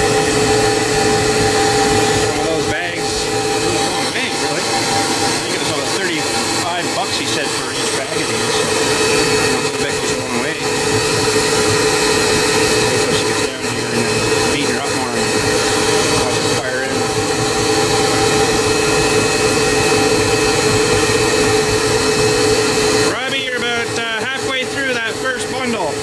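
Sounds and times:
insulation blowing machine motor: 0.0 - 26.0.

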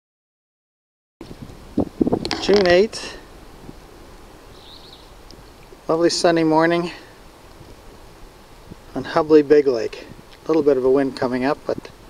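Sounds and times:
outdoor background noise: 1.2 - 12.0
high bird chirp: 4.5 - 5.6.

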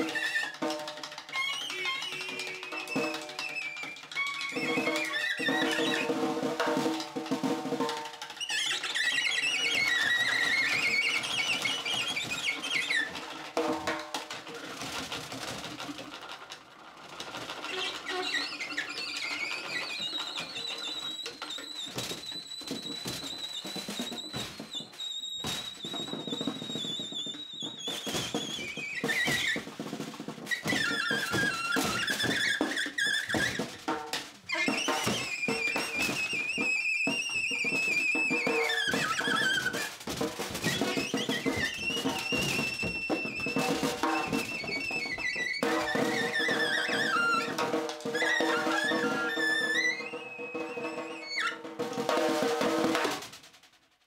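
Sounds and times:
alto saxophone squealing: 0.0 - 6.2, 8.2 - 13.3, 17.6 - 29.7, 30.5 - 33.9, 34.5 - 51.7
snare drum hits and rattles: 0.0 - 54.0.

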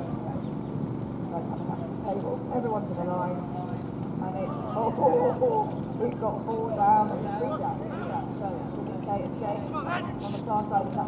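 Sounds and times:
voices calling out: 0.0 - 11.0.

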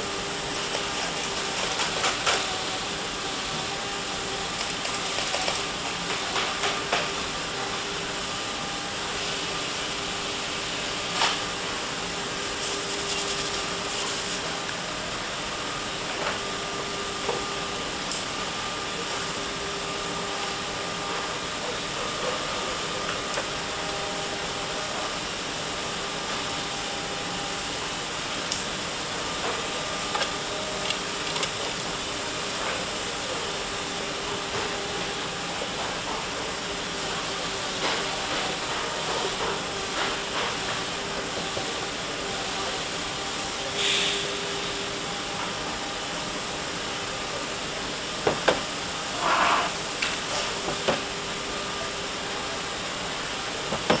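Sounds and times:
machinery hum and hiss: 0.0 - 54.0.

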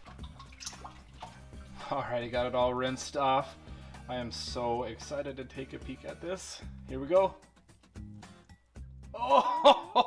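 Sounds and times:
water sloshing in a bucket: 0.0 - 2.1.

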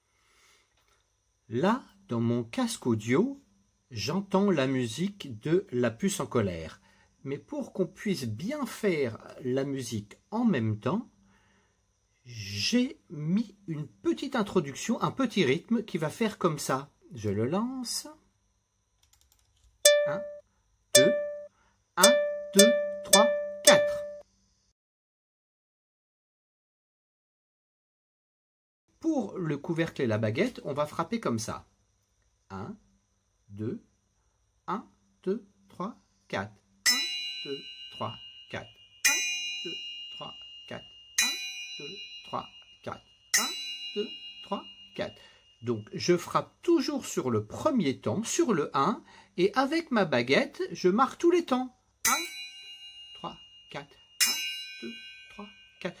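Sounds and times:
plucked notes: 19.9 - 20.4, 21.0 - 24.2
soft short beats: 19.9 - 20.4, 21.0 - 24.2.

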